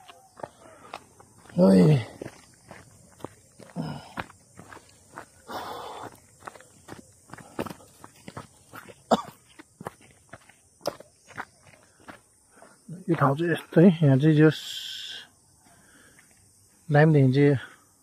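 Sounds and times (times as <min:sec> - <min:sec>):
footsteps on gravel: 0:00.0 - 0:13.8.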